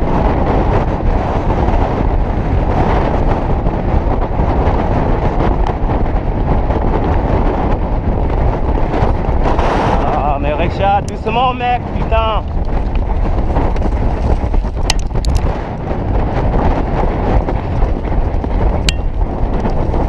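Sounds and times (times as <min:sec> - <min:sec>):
loud wind rush on microphone: 0:00.0 - 0:20.0.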